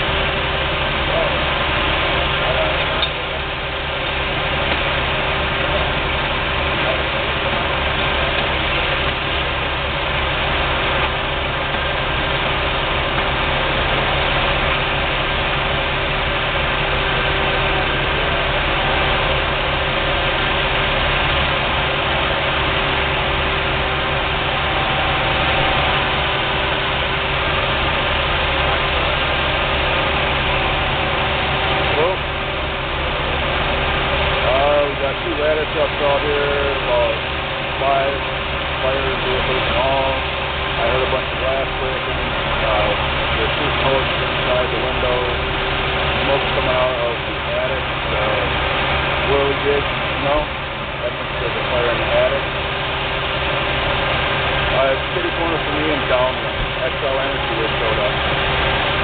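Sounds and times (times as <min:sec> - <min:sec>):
diesel engines droning: 0:00.0 - 0:59.0.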